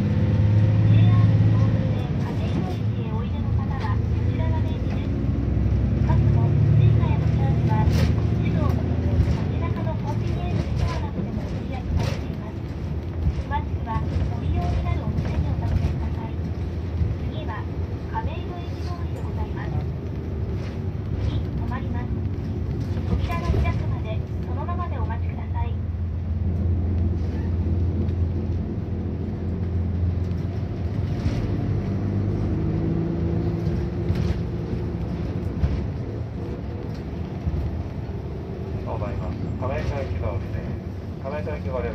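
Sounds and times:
bus engine and road drone: 0.0 - 41.9.

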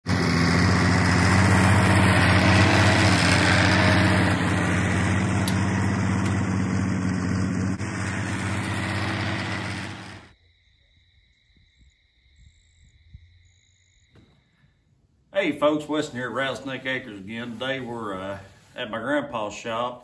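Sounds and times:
tractor engine running: 0.0 - 10.4, 15.4 - 19.1.

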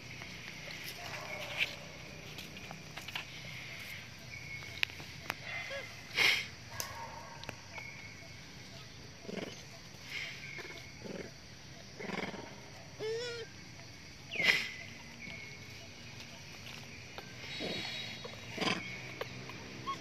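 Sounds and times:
macaques calling: 5.0 - 6.9, 7.7 - 20.0
monkey squealing: 13.0 - 13.5, 17.6 - 18.9, 19.8 - 20.0.

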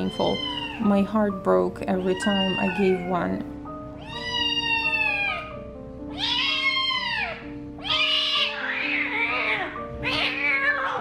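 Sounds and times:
kitten meowing in distress: 0.0 - 0.9, 2.0 - 3.3, 4.0 - 5.4, 6.1 - 11.0
background music with soft held notes: 0.0 - 11.0.

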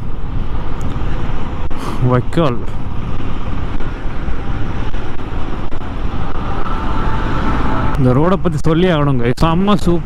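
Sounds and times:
motorcycle engine cruising: 0.0 - 9.1
wind and road noise: 0.0 - 10.0.

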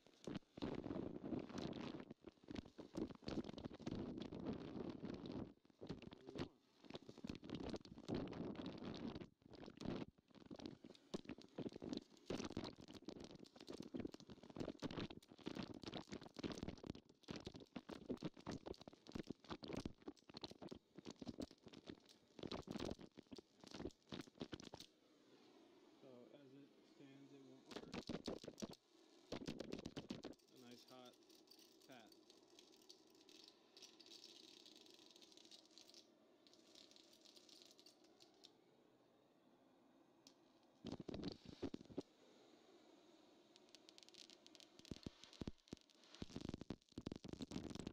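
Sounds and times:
electric arc crackling and buzzing: 43.5 - 47.9.

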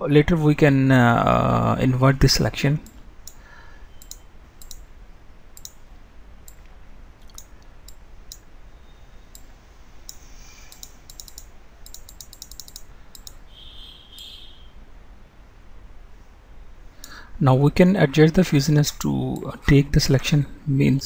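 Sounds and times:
computer mouse clicking: 4.0 - 4.8, 5.6 - 5.8, 6.5 - 8.5, 10.1 - 13.4.

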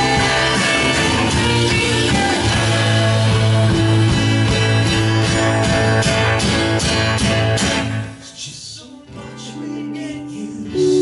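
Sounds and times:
steady drum beat: 0.0 - 7.7
rock band playing live: 0.0 - 8.2, 10.7 - 11.0
held low bass note: 10.8 - 11.0.

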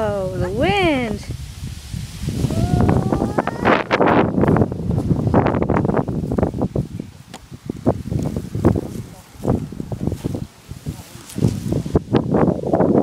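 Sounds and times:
plastic ride-on toy on grass: 0.0 - 13.0
footsteps on dry grass: 1.8 - 12.4.

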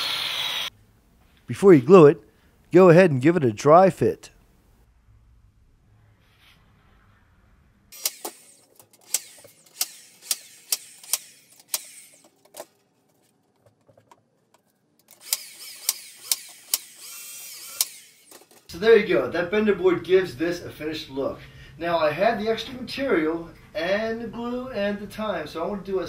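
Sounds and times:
nail gun firing: 8.0 - 12.3, 15.1 - 18.6.

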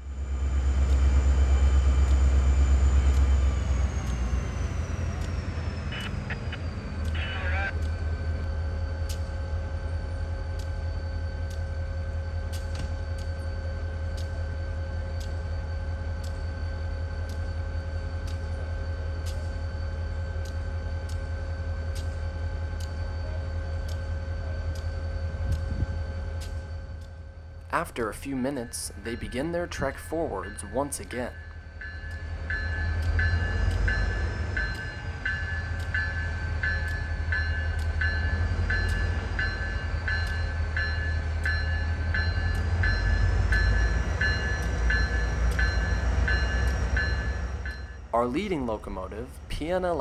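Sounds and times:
diesel locomotive engines: 0.0 - 50.0.

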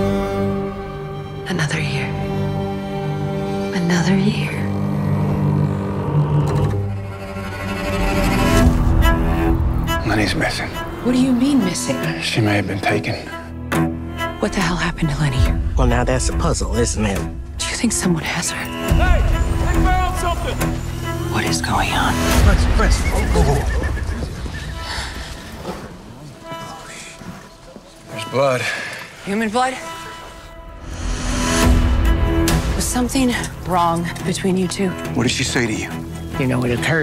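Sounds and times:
sustained low drone: 2.2 - 12.2.

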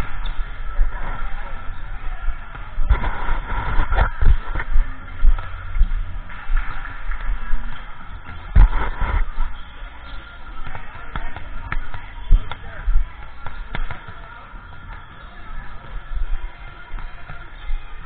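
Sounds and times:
voices: 0.0 - 18.0
volleyballs being hit and bouncing: 3.9 - 9.2, 10.5 - 18.0.

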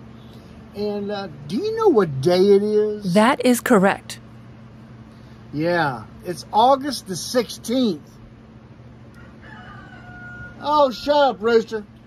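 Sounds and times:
rooster crowing faintly: 9.2 - 10.7.

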